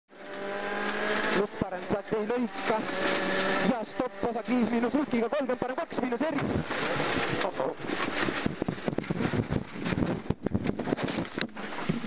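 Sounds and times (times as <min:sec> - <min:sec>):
rally car engine at high revs: 0:00.1 - 0:12.0.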